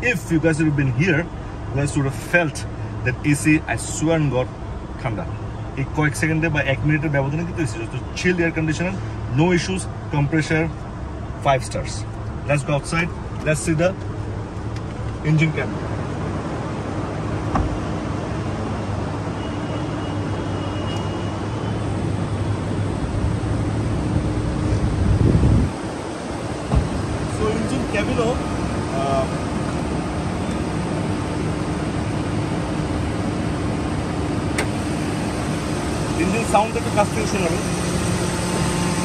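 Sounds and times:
car engine idling: 21.8 - 39.0.

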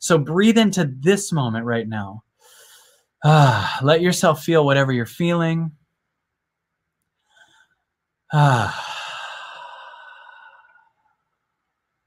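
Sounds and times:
man sighing exhale: 3.2 - 3.8, 8.3 - 10.9.

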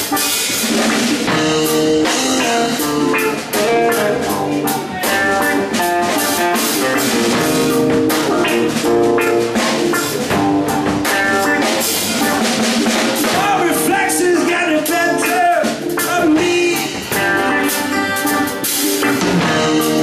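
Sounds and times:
drum kit steady beat: 0.0 - 20.0
electric guitar lines: 0.0 - 20.0
rock blues band playing: 0.0 - 20.0.

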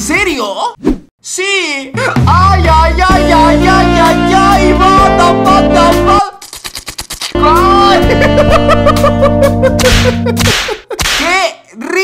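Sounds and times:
background music: 1.9 - 6.3, 7.4 - 10.8
person crying out: 7.4 - 9.8
whip-like swish: 9.8 - 11.3.

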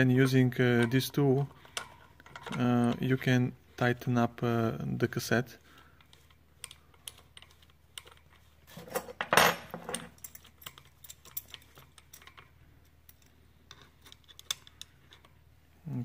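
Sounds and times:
metal tool clicks and clinks: 8.8 - 12.5.

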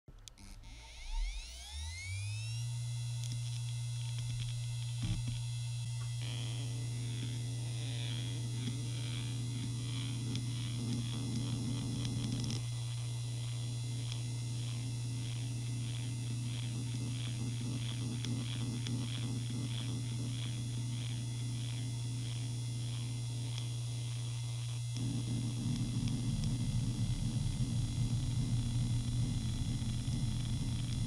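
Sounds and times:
hard drive whine and hum: 0.1 - 31.0.

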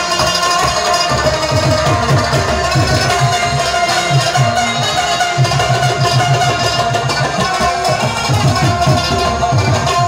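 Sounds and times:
rubab strummed and plucked: 0.0 - 10.0
tabla strokes: 0.0 - 10.0.

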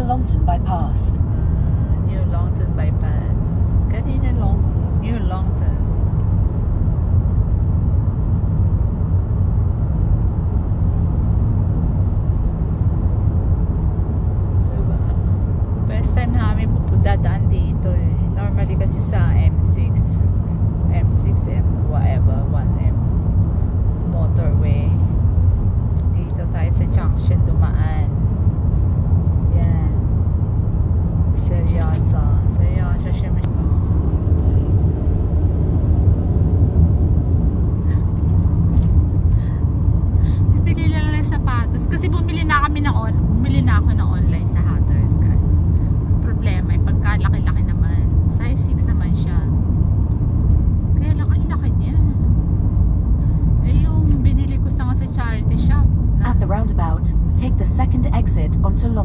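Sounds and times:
woman speaking: 0.0 - 5.8, 14.7 - 20.3, 20.9 - 23.0, 24.1 - 25.0, 26.1 - 28.2, 29.5 - 30.0, 31.4 - 34.8, 40.2 - 45.6, 46.2 - 49.5, 51.0 - 52.1, 53.6 - 59.0
car engine and road noise: 0.0 - 59.0.

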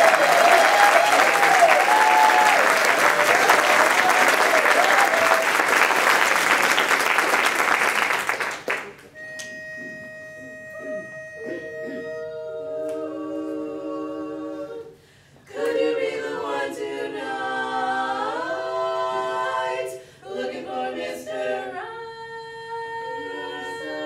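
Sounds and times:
women singing in harmony: 11.8 - 24.0
singers breathing: 14.9 - 15.5, 20.0 - 20.3.

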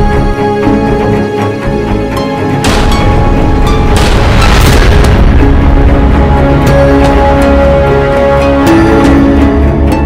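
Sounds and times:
sharp strikes: 2.6 - 7.5
deep booming hits: 2.6 - 7.8
dense low rumble: 2.7 - 8.2.

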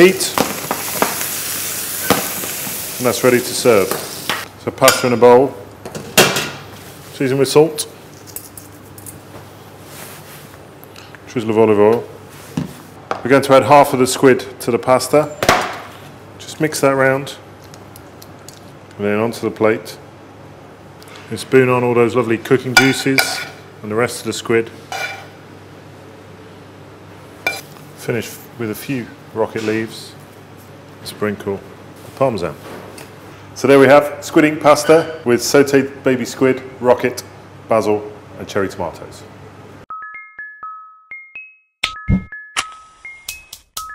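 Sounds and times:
low kitchen hum: 0.0 - 39.9.

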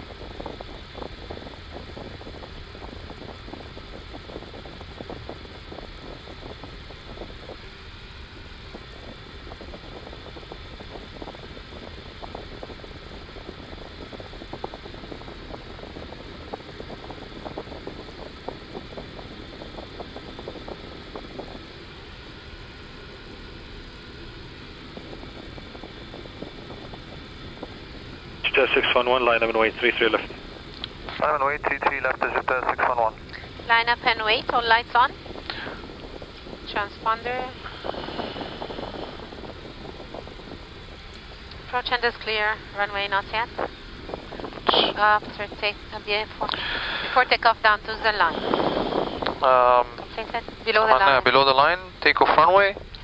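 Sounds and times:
idling jet engines hum and hiss: 0.0 - 53.0.

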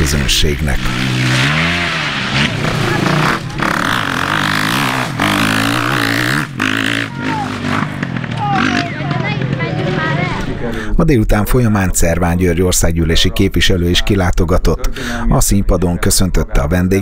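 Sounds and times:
dirt bike engines revving: 0.0 - 17.0.

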